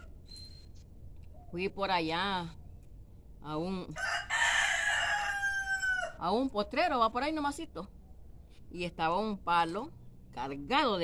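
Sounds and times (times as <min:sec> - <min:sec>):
rooster crowing: 0:04.0 - 0:06.2.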